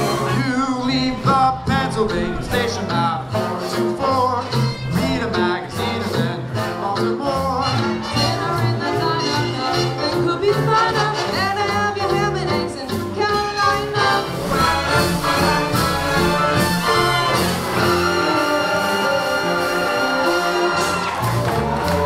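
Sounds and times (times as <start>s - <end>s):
swing big band playing: 0.0s - 22.0s.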